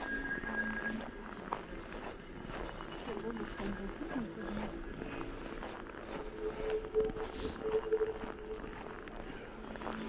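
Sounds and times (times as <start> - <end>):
footsteps crunching on snow: 0.0 - 10.0.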